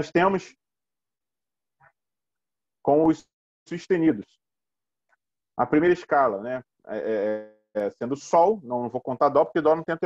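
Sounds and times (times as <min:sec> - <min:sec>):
man speaking: 0:02.9 - 0:04.4, 0:05.6 - 0:10.0.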